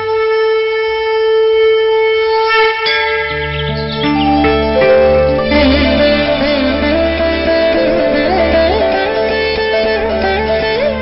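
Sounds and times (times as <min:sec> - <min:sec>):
horn-like wind instrument note: 0:04.0 - 0:10.2.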